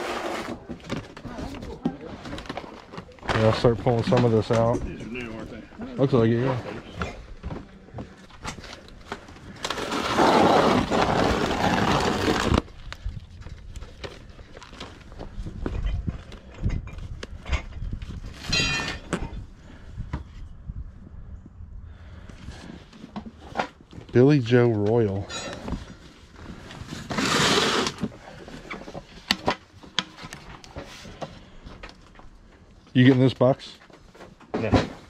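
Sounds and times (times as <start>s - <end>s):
plastic tubs scraping: 0.0s - 4.7s, 9.1s - 12.7s, 25.1s - 29.4s.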